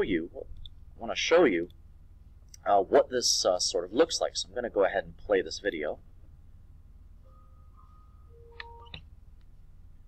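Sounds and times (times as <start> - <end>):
room hum: 0.0 - 10.0
faint short steady tones: 7.0 - 9.4.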